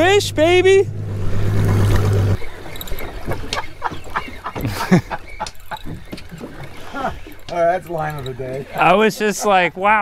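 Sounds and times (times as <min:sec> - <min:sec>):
water slapping against boat hull: 0:01.3 - 0:07.9.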